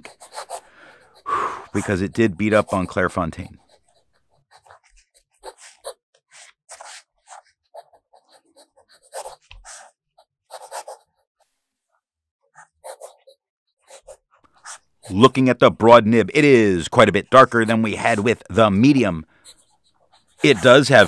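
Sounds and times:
pen nib scratching on paper: 0:00.0 - 0:11.1, 0:12.6 - 0:15.2.

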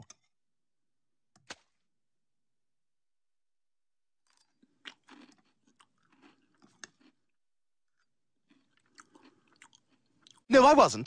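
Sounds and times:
chewing cereal crunches: 0:04.2 - 0:10.5.

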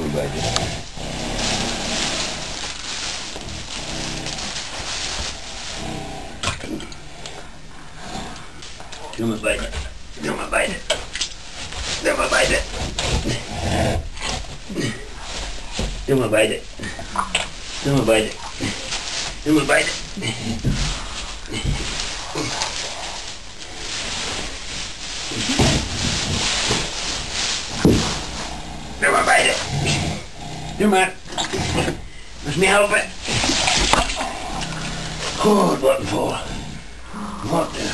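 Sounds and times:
large animal groaning: 0:00.0 - 0:02.7, 0:03.3 - 0:04.6, 0:05.6 - 0:08.6, 0:28.0 - 0:32.1, 0:33.3 - 0:37.9.

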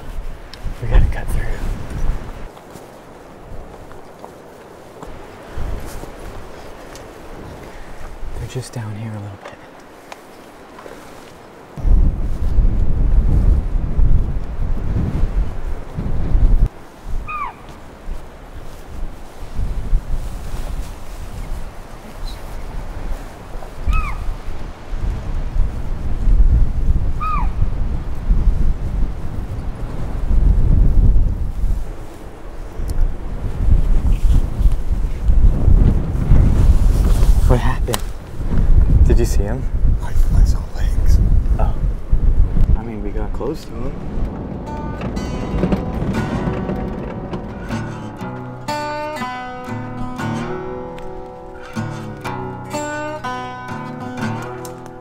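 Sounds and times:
wind buffeting the microphone: 0:00.0 - 0:53.3
bird downward-sliding call: 0:17.2 - 0:17.7, 0:23.9 - 0:24.3, 0:27.2 - 0:27.6.

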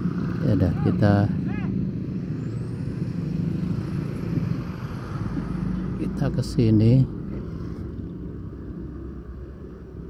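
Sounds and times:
diesel truck engine passing: 0:00.0 - 0:10.0.

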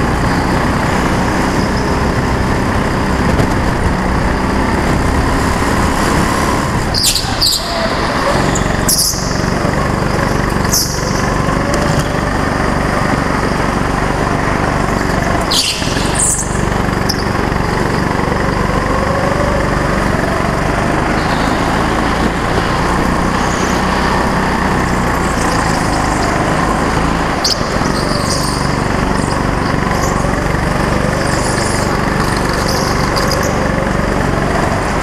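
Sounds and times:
go-kart engine running: 0:00.0 - 0:35.0
high-pitched tyre squeals: 0:04.1 - 0:14.0, 0:14.6 - 0:35.0.

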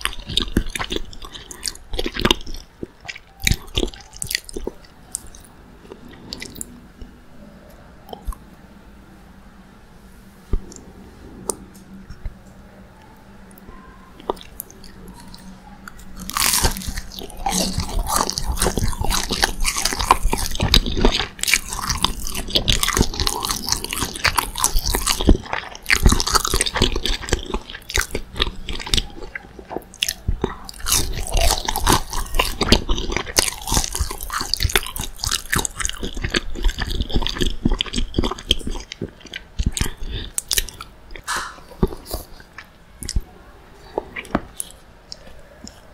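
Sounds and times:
crunching bites and chewing: 0:00.0 - 0:06.7, 0:14.2 - 0:43.2, 0:44.0 - 0:45.9
close-miked eating: 0:00.0 - 0:08.6, 0:10.0 - 0:45.9.

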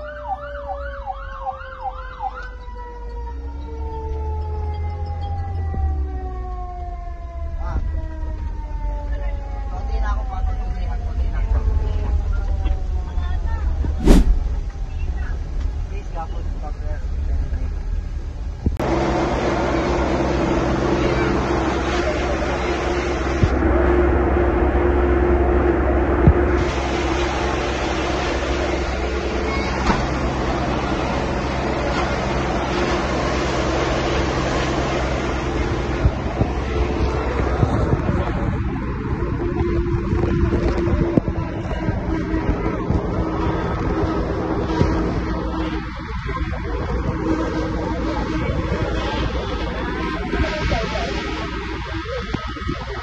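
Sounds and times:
fire truck engine rumbling: 0:00.0 - 0:53.0
broad rushing noise: 0:13.9 - 0:14.7, 0:18.8 - 0:53.0
short burst of noise: 0:14.0 - 0:14.6
voices: 0:27.0 - 0:53.0.

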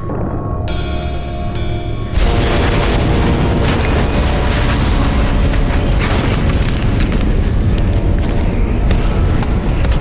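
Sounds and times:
film music: 0:00.0 - 0:10.0
deep rumbling with booms: 0:02.1 - 0:10.0.

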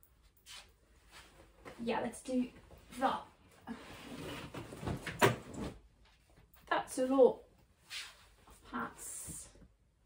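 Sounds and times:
clothes rustling and sliding: 0:00.1 - 0:06.6, 0:07.7 - 0:08.9.

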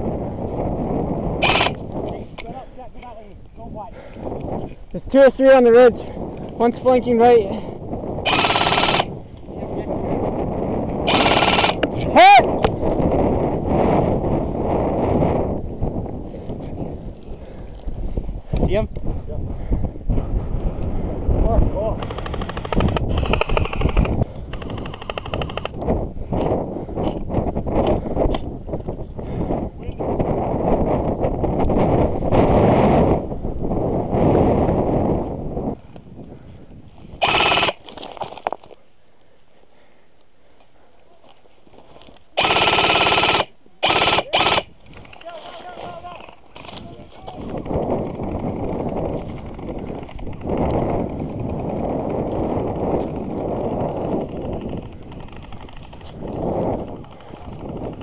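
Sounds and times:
wind buffeting microphone: 0:00.0 - 0:38.8, 0:41.8 - 0:58.0
airsoft rifle full-auto bursts: 0:01.4 - 0:01.8, 0:08.3 - 0:09.1, 0:11.0 - 0:11.9, 0:22.0 - 0:25.8, 0:37.2 - 0:37.9, 0:42.4 - 0:44.7.

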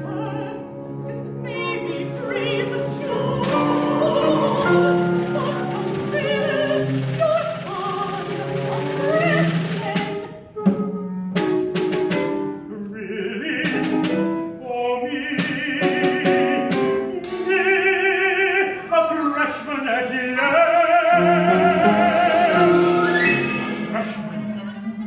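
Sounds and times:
man singing with vibrato: 0:00.0 - 0:10.2, 0:12.5 - 0:24.8
small instrumental ensemble: 0:00.0 - 0:25.0.

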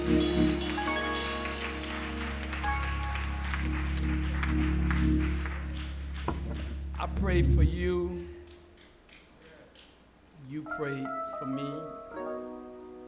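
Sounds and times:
church organ chords: 0:00.0 - 0:08.6
deep bass: 0:03.6 - 0:08.7.

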